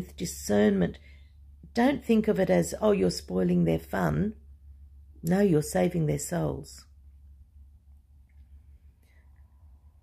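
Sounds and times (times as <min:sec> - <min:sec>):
faint steady tone: 0:00.0 - 0:10.0
steady low hum: 0:00.0 - 0:10.0.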